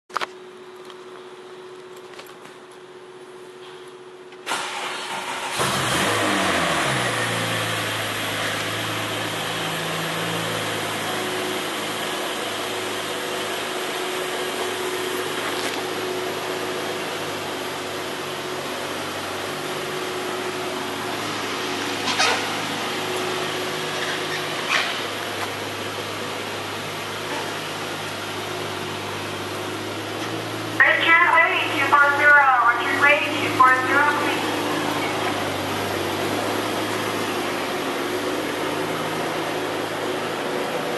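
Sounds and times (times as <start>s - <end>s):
car engine starting and idling: 0.1s - 40.9s
person speaking: 30.8s - 35.4s.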